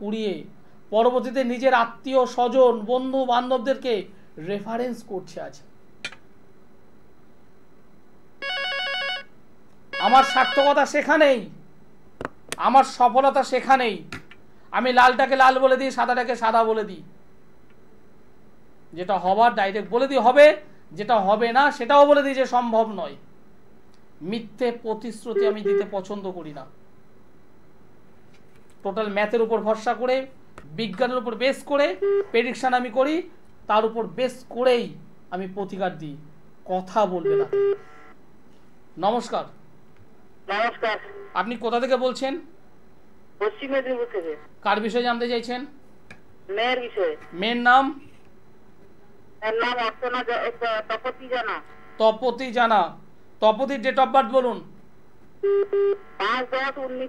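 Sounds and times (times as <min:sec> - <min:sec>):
person speaking: 0:00.0 - 0:06.2, 0:10.0 - 0:11.6, 0:24.2 - 0:26.8, 0:28.8 - 0:37.6, 0:40.5 - 0:42.5, 0:43.4 - 0:45.8, 0:46.5 - 0:48.2, 0:49.4 - 0:54.8, 0:56.2 - 0:57.0
electronic telephone ring: 0:08.4 - 0:09.3, 0:09.9 - 0:10.7, 0:37.3 - 0:38.2, 0:55.4 - 0:56.4.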